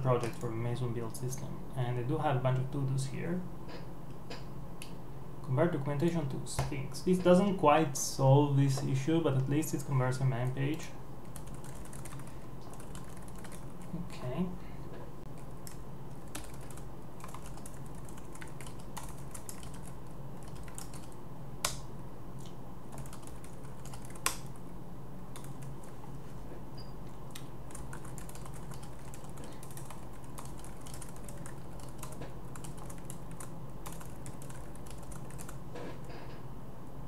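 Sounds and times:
low background hum: 0:00.0 - 0:37.0
computer keyboard typing: 0:00.2 - 0:00.5, 0:11.2 - 0:13.8, 0:15.4 - 0:21.8, 0:22.9 - 0:24.6, 0:25.4 - 0:26.0, 0:27.3 - 0:35.6.

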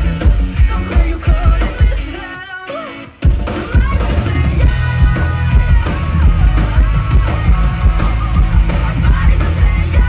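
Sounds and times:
drum kit beat: 0:00.0 - 0:10.0
live rock band playing: 0:00.0 - 0:10.0.

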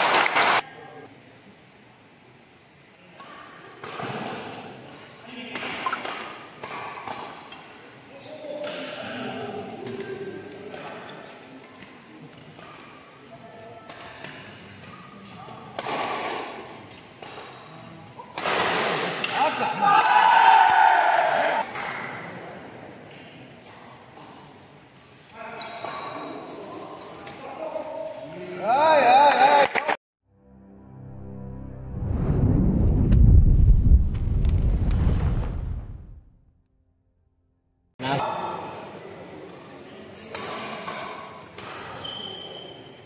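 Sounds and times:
deep rumbling boom: 0:31.7 - 0:36.6.

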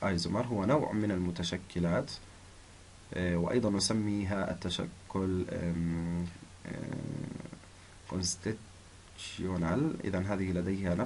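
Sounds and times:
narrator humming and speaking: 0:00.0 - 0:02.2, 0:03.1 - 0:08.6.

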